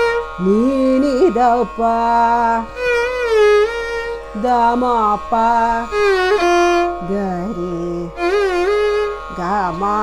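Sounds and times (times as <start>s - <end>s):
bowed violin phrase: 0.0s - 10.0s.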